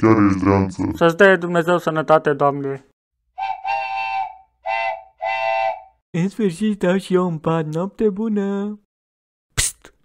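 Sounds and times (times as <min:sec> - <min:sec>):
two-note whistle blasts: 0:03.4 - 0:06.0.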